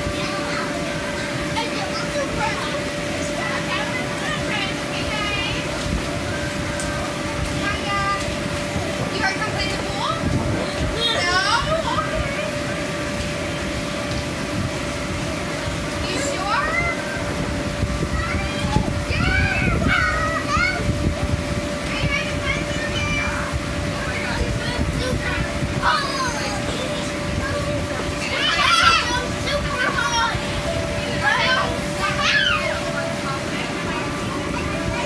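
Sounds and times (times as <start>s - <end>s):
children calling and squealing: 0.0s - 15.2s, 15.9s - 35.0s
air blower droning: 0.0s - 35.0s.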